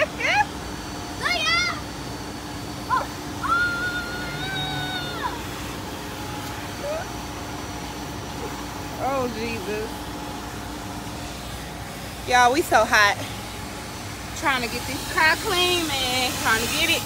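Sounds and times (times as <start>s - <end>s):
girls laughing: 0.0s - 0.6s
car-wash vacuum humming: 0.0s - 17.0s
girl squealing: 1.2s - 1.8s, 2.9s - 5.6s, 6.8s - 7.1s.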